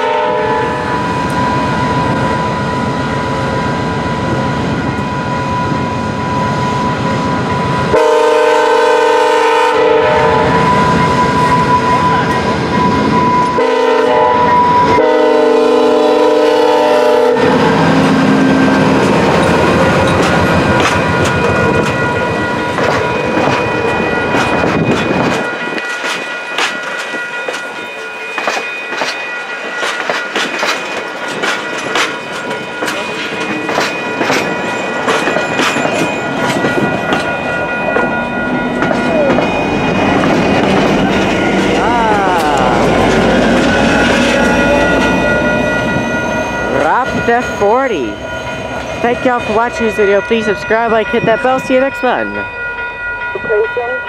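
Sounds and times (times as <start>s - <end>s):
train air horn blasts: 0.0s - 0.9s, 7.9s - 10.9s, 13.5s - 18.6s
locomotive rumbling: 0.0s - 54.0s
train wheels clicking on rail joints: 17.5s - 47.8s.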